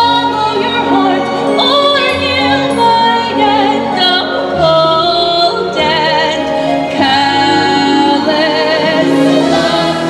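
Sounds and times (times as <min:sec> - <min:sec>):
group singing in chorus: 0:07.6 - 0:10.0.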